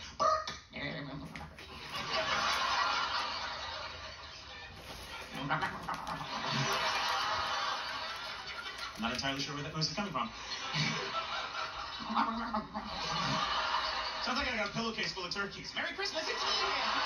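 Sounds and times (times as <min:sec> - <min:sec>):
studio audience laughing: 0:01.6 - 0:15.2, 0:16.1 - 0:17.0.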